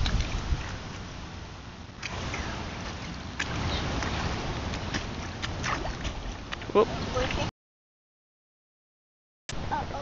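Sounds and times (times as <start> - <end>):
children's feet splashing in puddle: 2.0 - 7.4.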